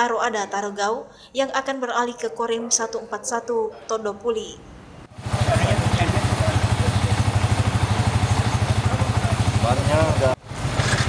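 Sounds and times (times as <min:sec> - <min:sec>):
engine idling: 0:05.1 - 0:11.0.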